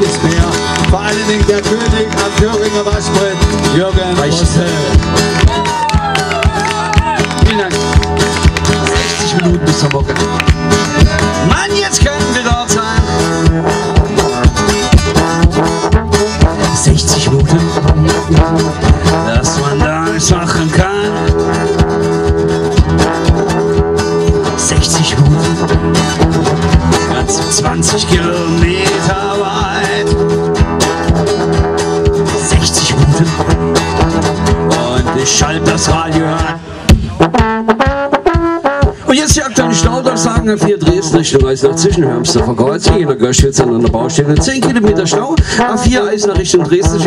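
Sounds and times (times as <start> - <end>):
fast steady clicking rhythm: 0.0 - 13.6
acoustic blues guitar: 0.0 - 47.0.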